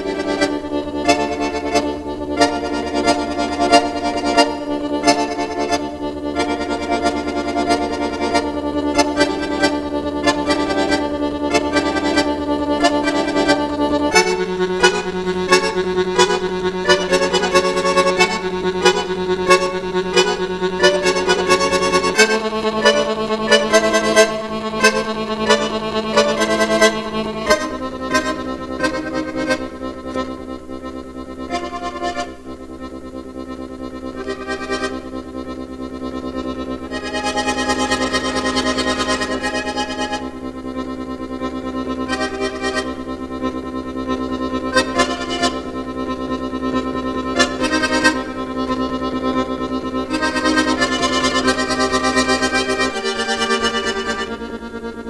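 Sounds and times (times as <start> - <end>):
button accordion playing: 0.0 - 55.0.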